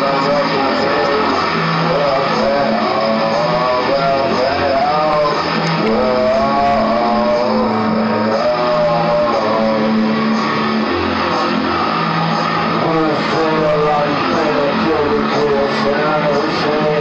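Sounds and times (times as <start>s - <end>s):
guitar song: 0.0s - 17.0s
long held bass notes: 0.0s - 17.0s
wavering melody line: 0.0s - 17.0s.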